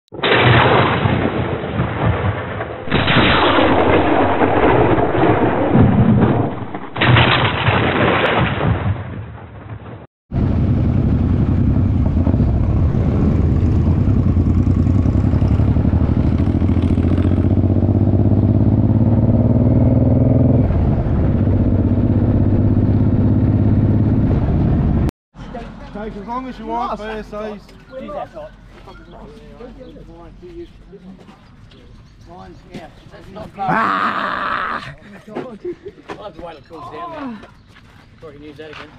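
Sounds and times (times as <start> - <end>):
motorcycle engine running: 10.3 - 25.1.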